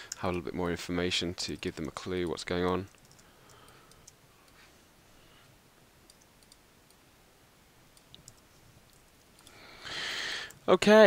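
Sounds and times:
computer mouse clicks: 1.5s - 4.6s, 6.1s - 7.0s, 8.0s - 9.6s.

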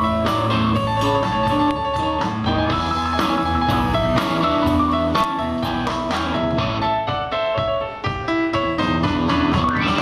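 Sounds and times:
electric guitar: 0.0s - 10.0s
live rock band playing: 0.0s - 10.0s
stage piano: 0.0s - 10.0s.

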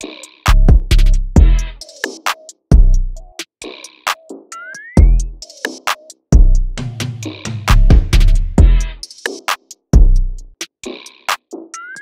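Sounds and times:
crisp hi-hats: 0.0s - 4.4s, 5.0s - 11.6s.

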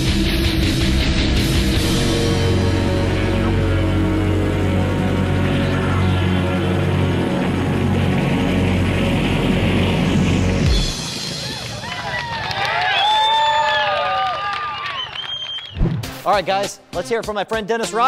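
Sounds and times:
loud engine drone: 0.0s - 11.1s
music: 0.0s - 13.4s, 15.7s - 18.0s
crowd cheering and shouting: 11.0s - 15.4s.

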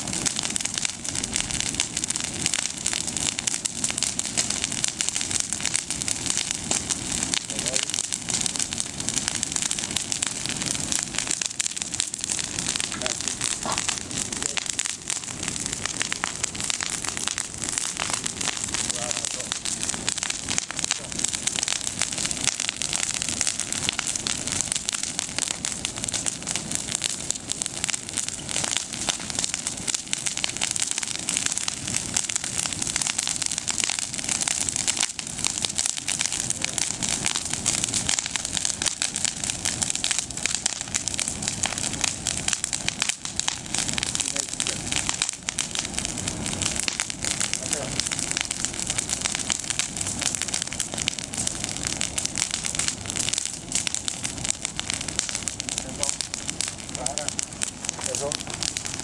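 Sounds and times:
bonfire twigs crackling: 0.0s - 59.0s.

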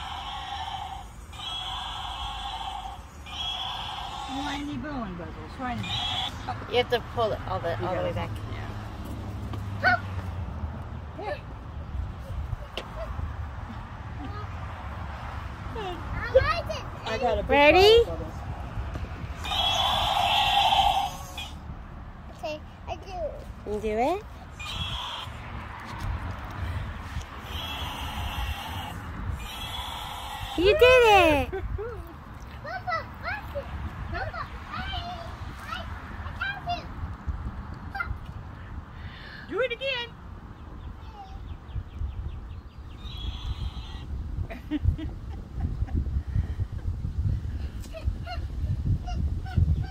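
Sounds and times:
toy motor whining: 0.0s - 4.7s, 19.4s - 21.6s, 27.4s - 31.1s.

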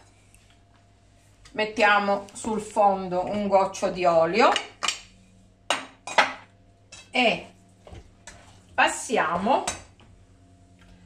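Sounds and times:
kitchenware clinking: 5.7s - 7.2s.

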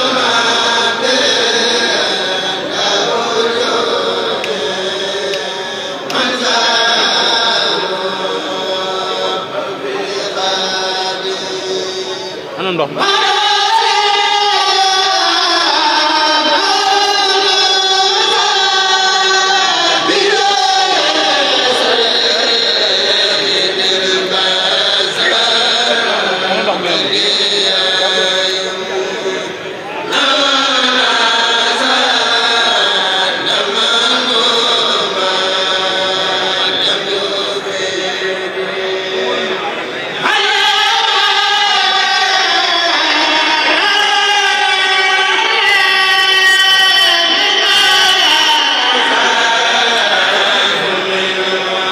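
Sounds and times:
men chanting together: 0.0s - 11.9s, 13.1s - 45.6s, 46.3s - 51.9s.

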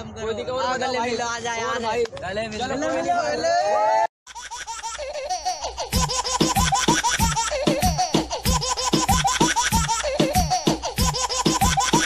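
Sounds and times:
person laughing: 4.9s - 12.0s
music beat: 5.4s - 12.0s.

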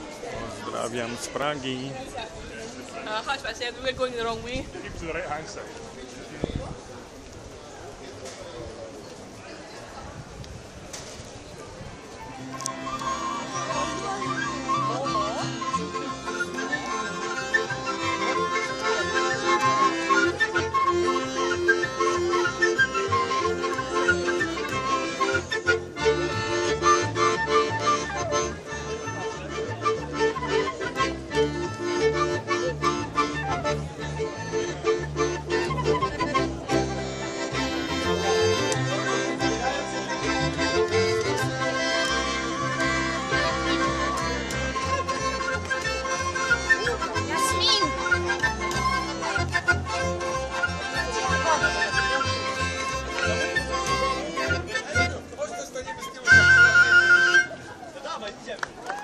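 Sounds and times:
accordion: 0.0s - 5.8s, 12.0s - 58.7s
street band playing: 0.0s - 59.0s
double bass line: 11.8s - 55.4s, 56.2s - 57.7s.

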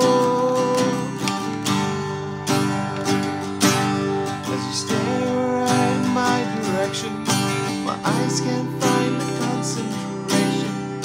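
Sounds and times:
man singing: 0.0s - 1.9s, 4.2s - 11.0s
acoustic guitar strumming chords: 0.0s - 11.0s.

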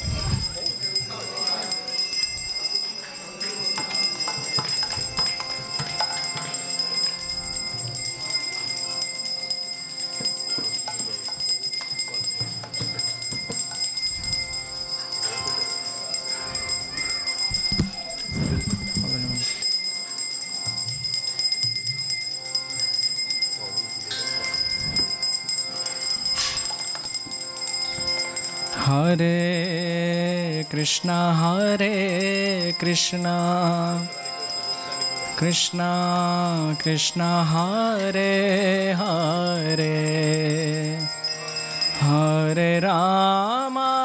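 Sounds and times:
hand cymbals and bells ringing: 0.0s - 44.0s
harmonium: 0.0s - 44.0s.

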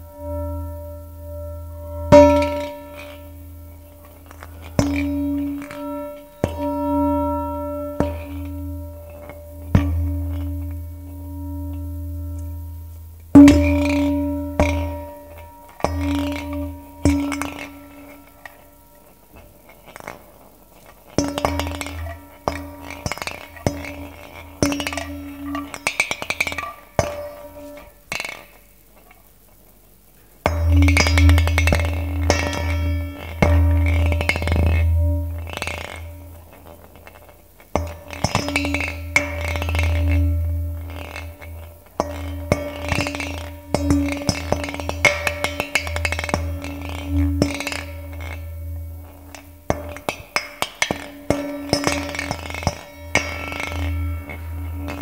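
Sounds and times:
ringing tone: 0.0s - 28.0s, 30.5s - 55.0s
low rumble: 7.1s - 18.9s, 30.6s - 36.6s, 38.6s - 50.1s
ball rattling in metal pan: 13.3s - 29.2s, 30.4s - 55.0s.

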